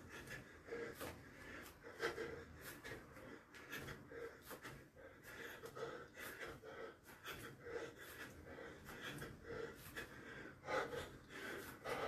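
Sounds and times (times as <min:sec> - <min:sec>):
man breathing hard: 0:00.0 - 0:12.0.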